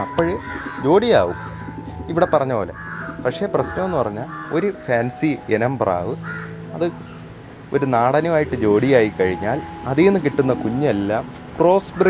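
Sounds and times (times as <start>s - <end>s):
bird calling: 0.0s - 12.0s
man talking: 7.7s - 12.0s.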